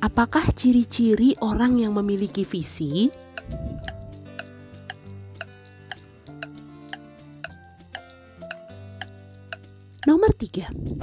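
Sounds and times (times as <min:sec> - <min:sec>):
clock-like ticking: 0:03.4 - 0:10.2.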